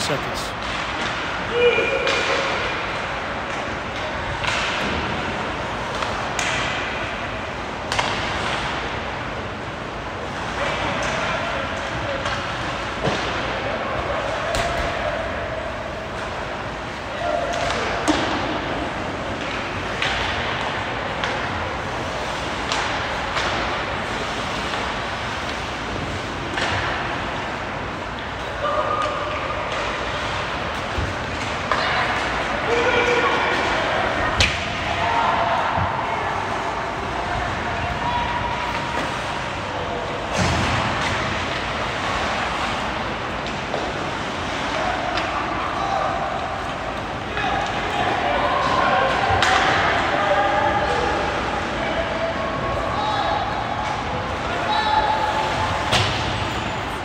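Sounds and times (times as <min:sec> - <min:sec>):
hockey sticks and puck clacking: 0:00.6 - 0:14.9, 0:16.1 - 0:35.3, 0:40.3 - 0:50.2.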